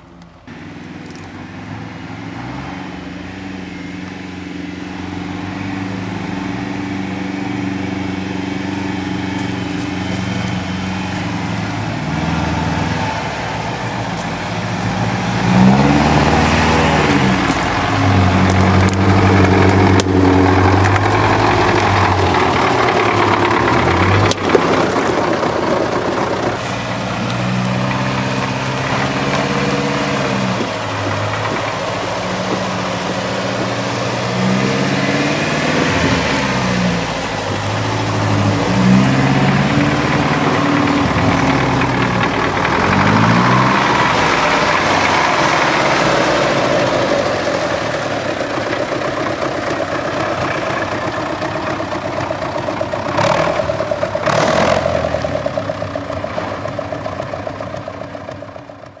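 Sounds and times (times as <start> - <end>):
off-road engines revving: 0.0 - 59.0.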